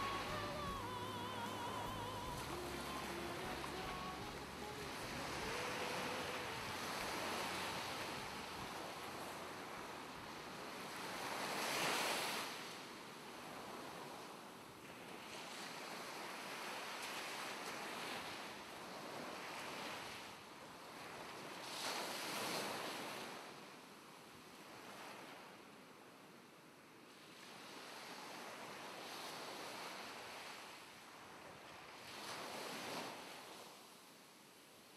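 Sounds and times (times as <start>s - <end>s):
sea waves washing in: 0.0s - 12.9s.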